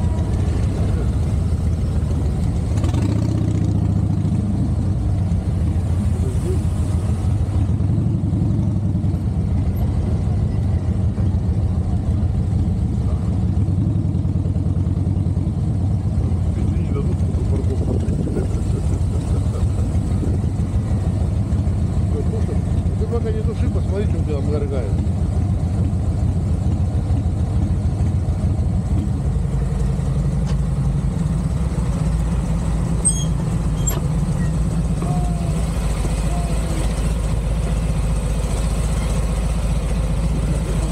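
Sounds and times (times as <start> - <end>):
motorcycle engine running: 0.0 - 40.9.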